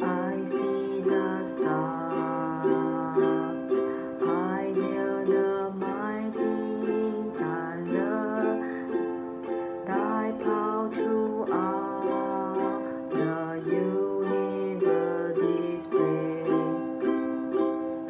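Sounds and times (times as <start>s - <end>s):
ukulele strumming chords: 0.0s - 18.0s.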